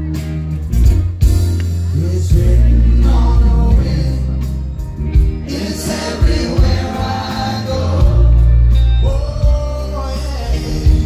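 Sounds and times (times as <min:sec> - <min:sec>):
bass notes: 0:00.0 - 0:11.0
electric guitars: 0:00.0 - 0:11.0
drum beat: 0:05.2 - 0:08.4.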